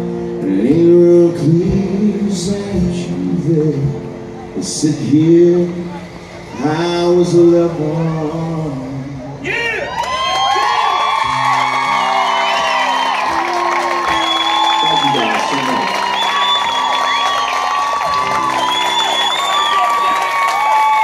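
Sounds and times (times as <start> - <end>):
acoustic guitar chords: 0.0 - 9.4, 11.1 - 20.0
audience cheering and whooping: 9.5 - 21.0
long high whistles: 10.3 - 20.2.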